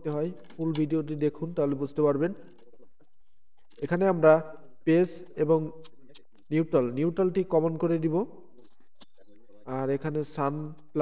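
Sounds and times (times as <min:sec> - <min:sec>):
man speaking: 0:00.0 - 0:02.6, 0:03.7 - 0:08.4, 0:09.4 - 0:11.0.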